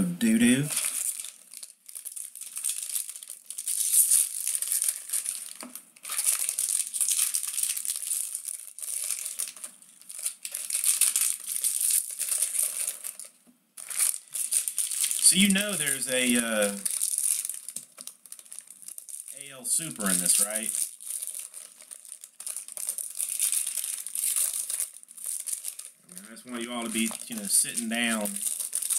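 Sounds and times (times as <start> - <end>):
foil wrappers crinkling and tearing: 0.5 - 28.9.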